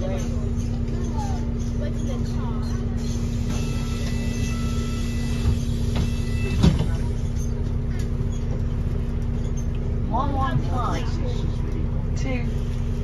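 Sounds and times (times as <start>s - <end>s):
bus engine rumble and hum: 0.0s - 13.0s.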